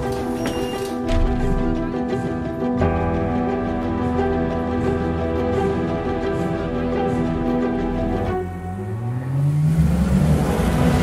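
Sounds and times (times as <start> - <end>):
sports car engine accelerating: 8.4 - 11.0.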